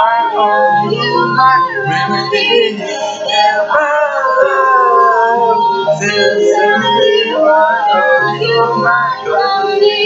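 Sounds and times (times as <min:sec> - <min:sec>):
pop song playing: 0:00.0 - 0:10.0.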